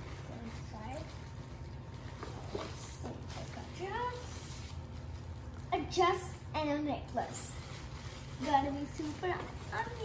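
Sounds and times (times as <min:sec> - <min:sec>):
paper bag and tissue rustling: 0:00.0 - 0:10.0.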